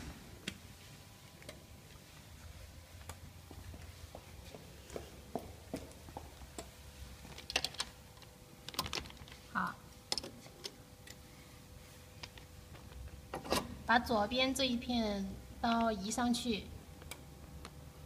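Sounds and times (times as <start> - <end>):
faint machine hum: 0.0 - 18.0.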